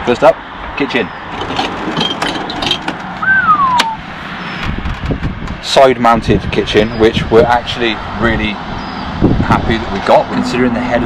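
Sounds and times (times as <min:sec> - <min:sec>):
outdoor background noise: 0:00.0 - 0:11.0
short falling whistle: 0:03.2 - 0:04.0.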